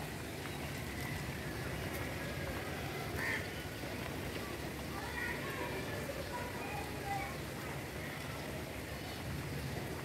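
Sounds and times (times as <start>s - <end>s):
city hum: 0.0s - 10.0s
steady rain: 0.0s - 10.0s
bird call like quack: 3.2s - 3.5s.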